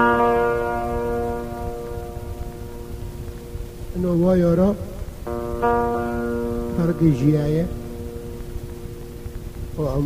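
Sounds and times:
plucked string note ringing: 0.0 - 4.1, 5.3 - 10.0.

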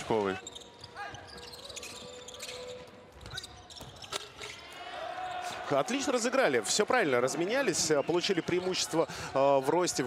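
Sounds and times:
faint arena background: 0.0 - 10.0.

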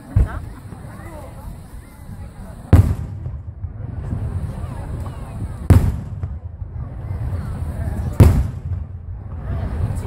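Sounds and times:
faint crowd voices: 0.0 - 10.0
loud firework boom: 2.7 - 10.0.

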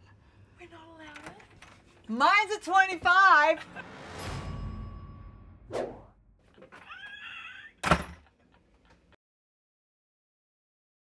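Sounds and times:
wooden door shutting: 7.8 - 8.3.

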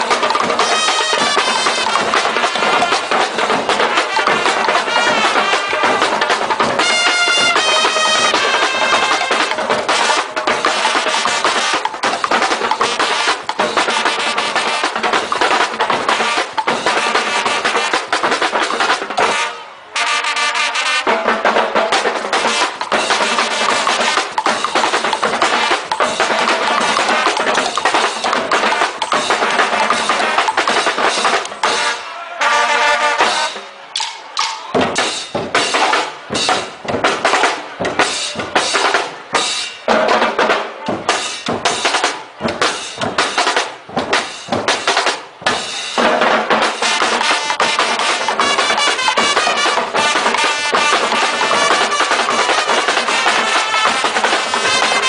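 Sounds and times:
drums and percussion rhythm: 0.0 - 55.0.

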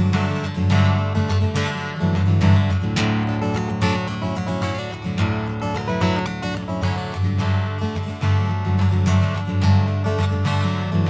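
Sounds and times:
fingerstyle acoustic guitar: 0.0 - 11.0.

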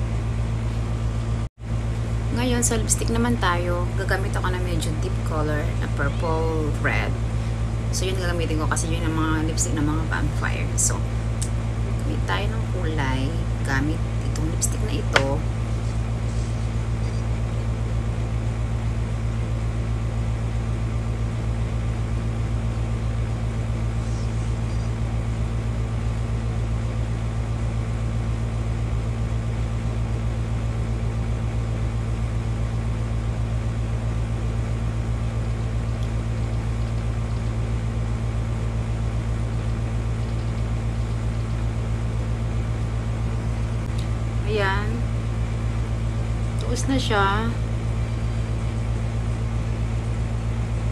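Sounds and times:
steady low hum: 0.0 - 50.9.

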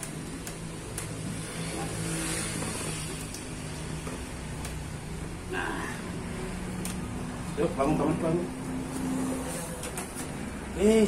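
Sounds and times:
vehicle engine passing: 1.3 - 4.0.

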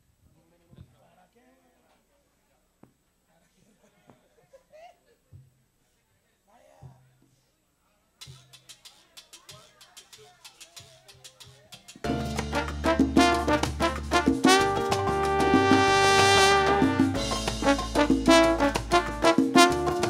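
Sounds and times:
percussion clicks: 8.2 - 12.1
salsa band playing: 8.4 - 20.0.

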